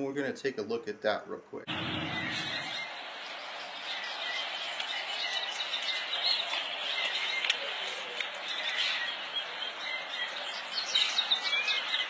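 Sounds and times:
birds chirping: 0:01.7 - 0:12.0.

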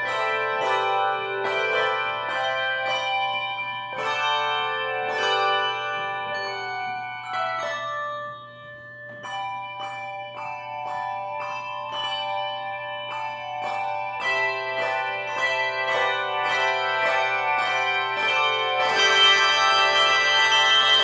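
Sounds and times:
handbell choir playing chords: 0:00.0 - 0:21.0.

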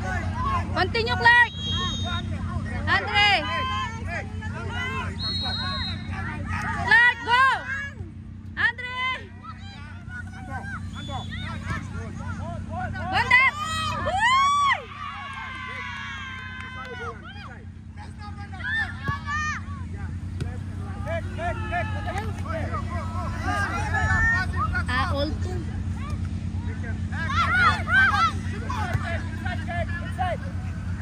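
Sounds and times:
low background hum: 0:00.0 - 0:31.0
players shouting: 0:00.0 - 0:31.0.

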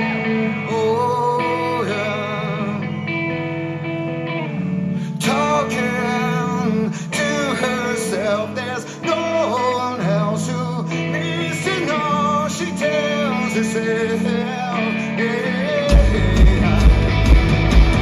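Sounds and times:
man singing: 0:00.0 - 0:03.4, 0:05.0 - 0:18.0
rock band playing: 0:00.0 - 0:06.6, 0:13.8 - 0:18.0.

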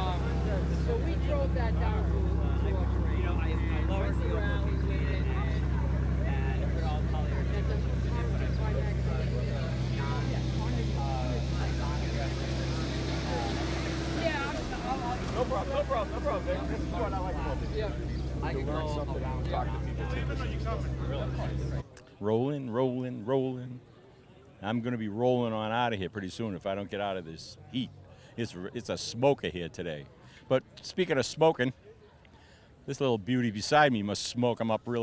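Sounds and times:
low engine hum: 0:00.0 - 0:21.9
people talking indistinctly: 0:00.0 - 0:35.0.

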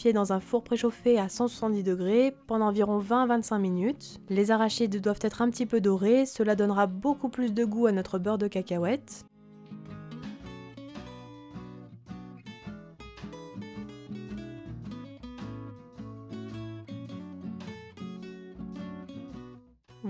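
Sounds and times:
acoustic guitar plucked notes: 0:09.4 - 0:20.0.

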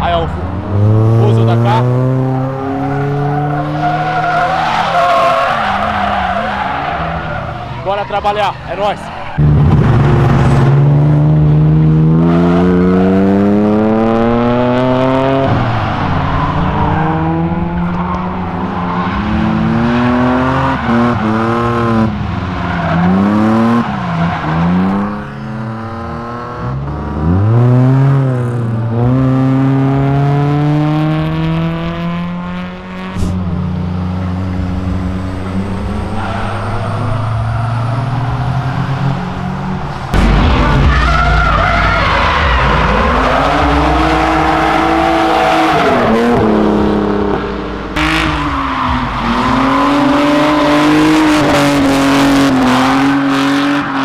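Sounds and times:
car engine revving hard: 0:09.4 - 0:22.3, 0:22.9 - 0:40.4, 0:41.9 - 0:54.0.

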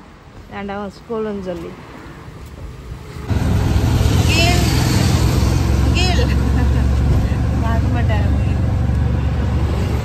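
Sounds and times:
rickshaw engine rumbling: 0:02.7 - 0:10.0.

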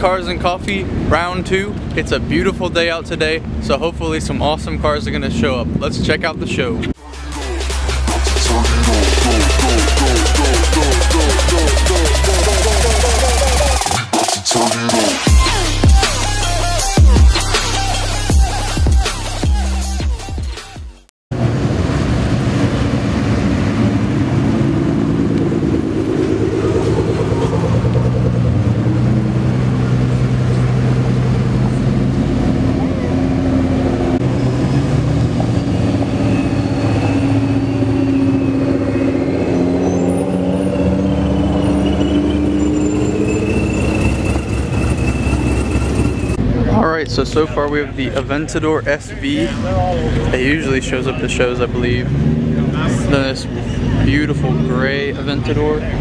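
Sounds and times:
cars driving slowly past: 0:21.4 - 0:56.0.

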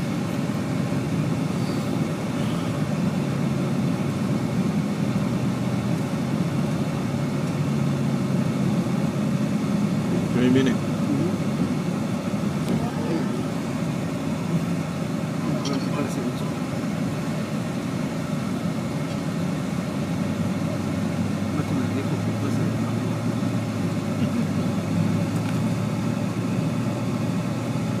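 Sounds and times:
vehicle engine and tyre drone: 0:00.0 - 0:28.0.

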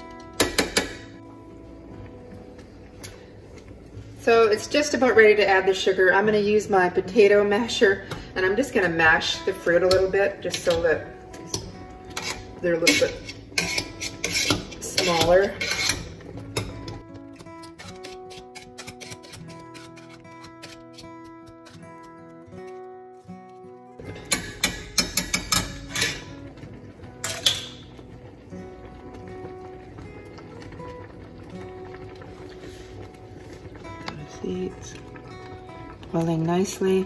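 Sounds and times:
background music with held notes: 0:00.0 - 0:37.0.

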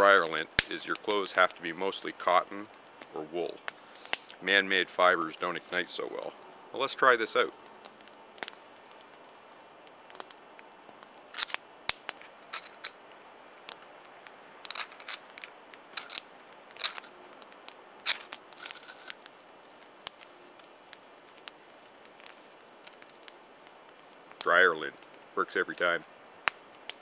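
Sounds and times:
fire striker clicks and scrapes: 0:11.3 - 0:13.0, 0:14.6 - 0:19.3.

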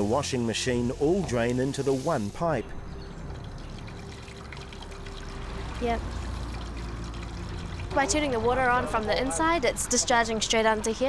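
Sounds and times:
water pouring from drain pipe: 0:01.0 - 0:09.5.

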